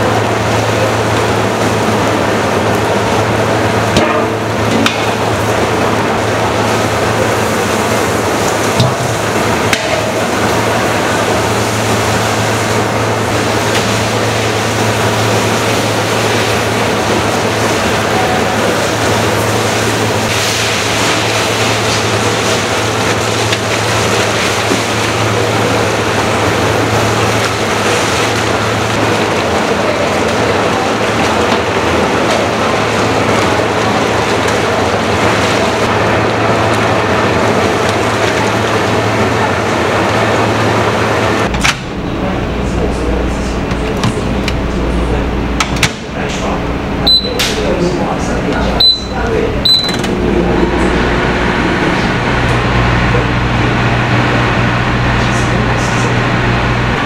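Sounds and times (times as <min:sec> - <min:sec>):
machine hum: 0:00.0 - 0:57.0.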